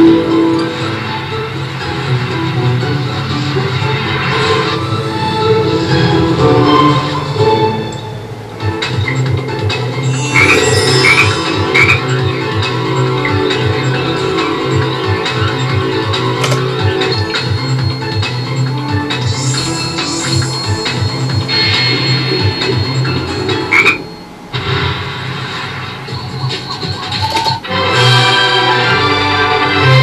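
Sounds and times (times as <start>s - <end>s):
game background music: 0.0s - 30.0s
slot machine electronic sounds: 9.1s - 24.3s, 26.0s - 28.2s
frog croak sound effects: 10.0s - 13.4s, 21.6s - 24.2s.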